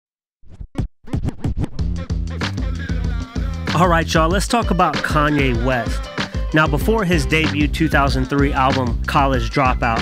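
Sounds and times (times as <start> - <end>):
vinyl record scratching: 0.4 - 2.0.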